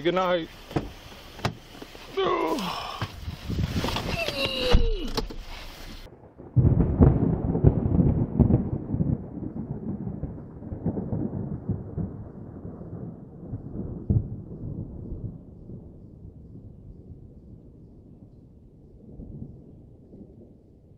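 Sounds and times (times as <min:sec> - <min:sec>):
thunder clap and rumble: 0:03.0 - 0:20.9.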